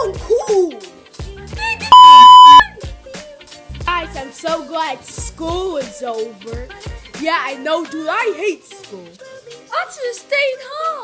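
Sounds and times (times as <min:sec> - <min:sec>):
censor bleep: 0:01.9 - 0:02.6
rapping over hip-hop beat: 0:04.2 - 0:11.0.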